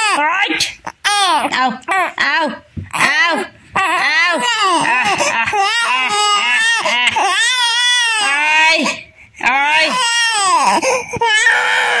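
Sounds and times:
infant crying: 3.8s - 12.0s.

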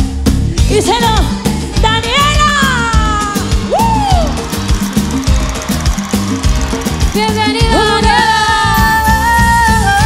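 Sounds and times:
percussion and bass beat: 0.0s - 10.0s
salsa band playing: 0.0s - 10.0s
woman singing: 7.2s - 10.0s.

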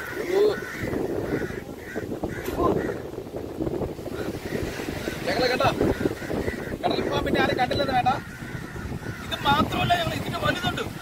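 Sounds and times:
crows cawing: 0.0s - 3.4s, 4.0s - 11.0s.

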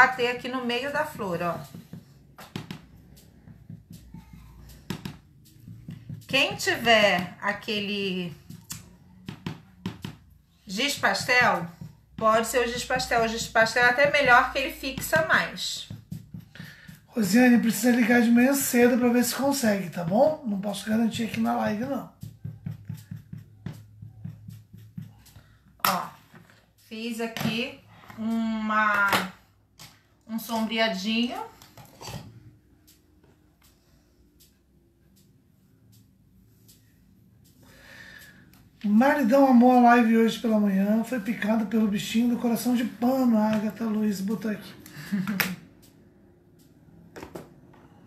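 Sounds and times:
makeup applicator dabbing taps: 0.0s - 27.8s
light clicks and taps: 31.6s - 37.6s.

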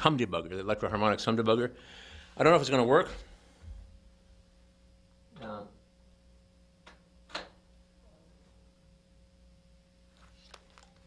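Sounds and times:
guitar amp mains hum: 0.0s - 11.0s.

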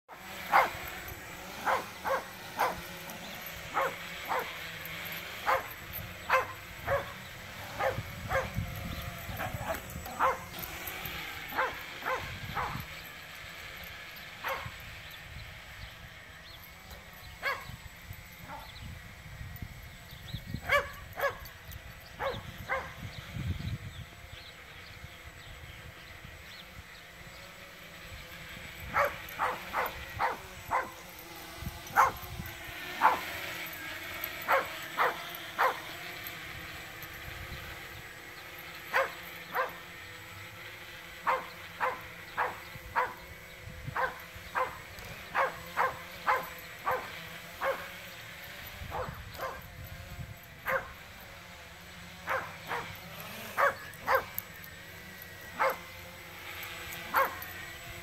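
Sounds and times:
drone propellers whining: 0.1s - 58.0s
dog barking: 0.5s - 0.8s, 1.6s - 2.8s, 3.7s - 4.6s, 5.4s - 5.7s, 6.3s - 7.2s, 7.8s - 8.6s, 9.4s - 10.6s, 11.5s - 12.8s, 20.7s - 21.4s, 28.9s - 30.9s, 32.0s - 32.2s, 33.0s - 33.3s, 34.5s - 35.8s, 38.9s - 39.8s, 44.0s - 47.9s, 48.9s - 49.6s, 50.7s - 50.9s, 52.3s - 53.0s, 53.6s - 54.3s, 55.6s - 55.8s, 57.1s - 57.4s.

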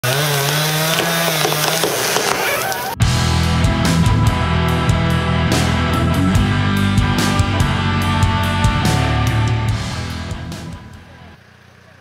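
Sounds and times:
chainsaw running: 0.0s - 12.0s
rock music with electric guitar: 3.0s - 11.4s.

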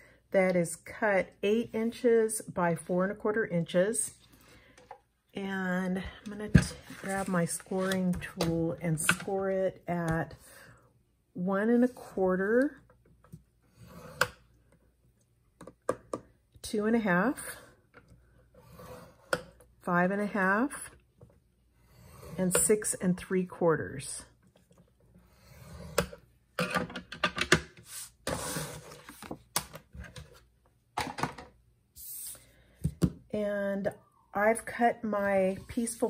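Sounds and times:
scoring tool scraping cardstock: 6.8s - 8.1s, 27.8s - 29.3s.

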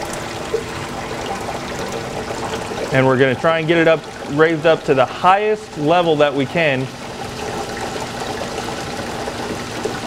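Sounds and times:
pump humming: 0.0s - 10.0s
water jet rushing: 0.0s - 10.0s.

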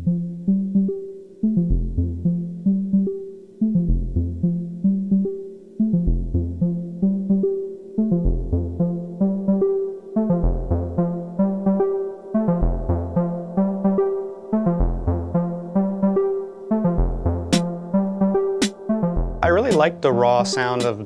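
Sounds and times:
sequenced synth notes: 0.0s - 21.0s
deep bass note: 19.0s - 20.1s.

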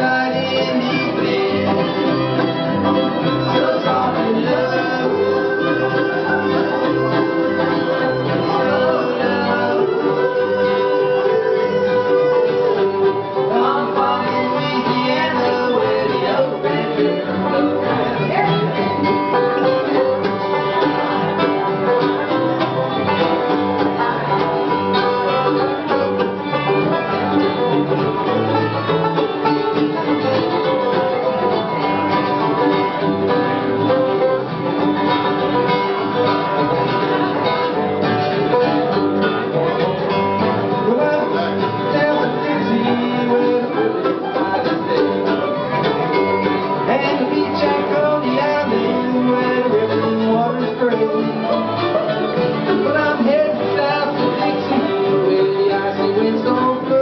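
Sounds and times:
acoustic guitar: 0.0s - 57.0s
banjo: 0.0s - 57.0s
fiddle: 0.0s - 57.0s
mandolin: 0.0s - 57.0s
resonator guitar sliding notes: 0.0s - 57.0s
upright bass: 0.0s - 57.0s.

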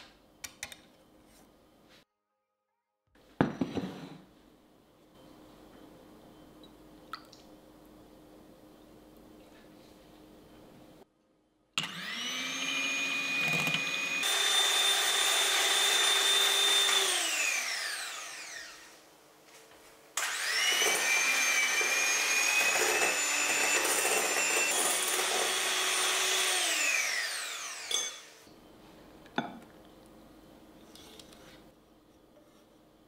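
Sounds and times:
electric hand mixer whining: 11.8s - 18.9s, 20.2s - 28.4s.

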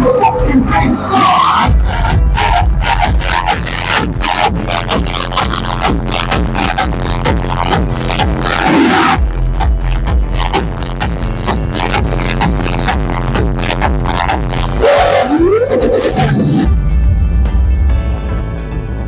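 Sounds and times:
electronic music with heavy bass: 0.0s - 19.0s.

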